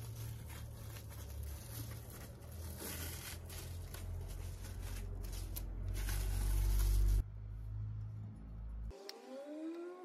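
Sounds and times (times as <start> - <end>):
cling film crinkling: 0.0 - 7.2.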